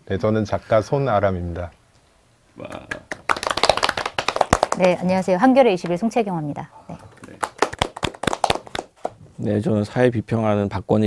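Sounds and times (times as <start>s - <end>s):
people clapping: 2.6s - 6.0s, 7.0s - 9.2s.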